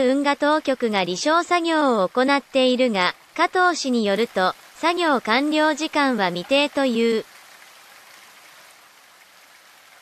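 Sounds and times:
faint water-like hiss: 0.0s - 10.0s.

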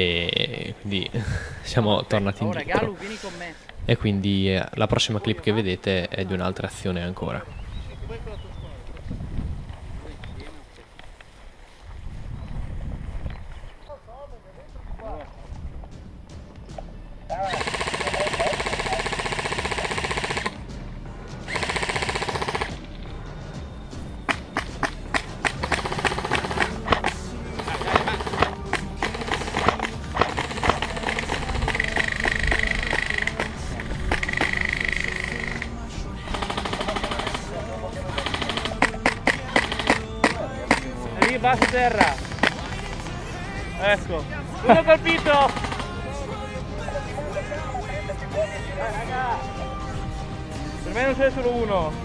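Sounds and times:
airsoft rifle firing on full auto: 17.4s - 20.6s, 21.5s - 22.8s, 24.3s - 35.7s, 36.3s - 43.0s, 45.1s - 46.0s
sharp clicks and cracks: 24.3s - 35.7s.

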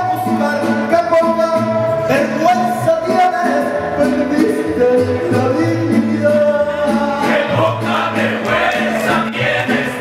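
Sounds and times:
mariachi band playing: 0.0s - 10.0s
voices singing: 6.6s - 10.0s.

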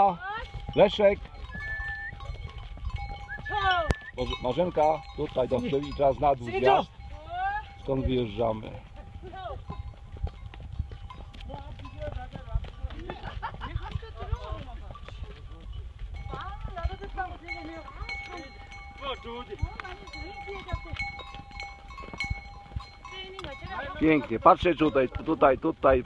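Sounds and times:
hooves on dirt trail: 0.0s - 26.0s
wind: 0.0s - 26.0s.

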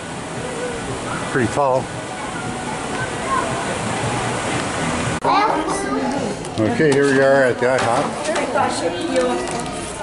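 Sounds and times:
faint distant voices: 0.1s - 10.0s.

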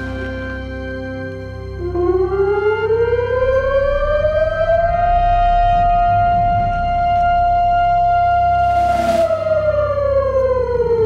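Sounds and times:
civil defence siren: 0.0s - 11.0s
soft background music: 0.0s - 11.0s.

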